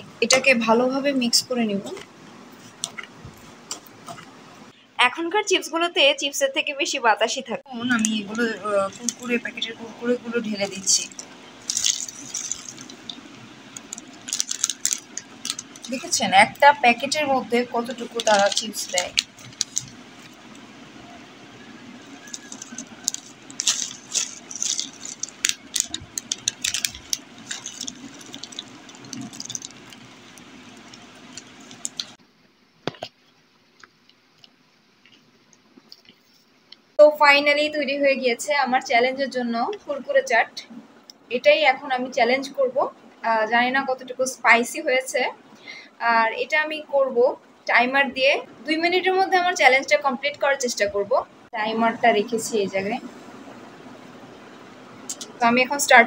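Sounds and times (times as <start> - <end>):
plastic packet crackling: 7.8 - 20.6, 22.0 - 32.2
snack pieces rattling into bowl: 11.0 - 13.2, 13.8 - 16.1, 22.2 - 32.2.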